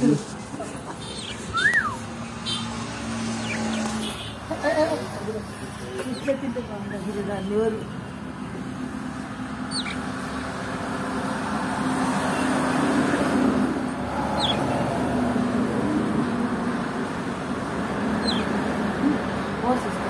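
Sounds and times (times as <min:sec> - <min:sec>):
road traffic engine rumble: 0:00.0 - 0:20.0
budgerigar chirps: 0:09.7 - 0:10.0, 0:14.4 - 0:14.6, 0:18.2 - 0:18.5.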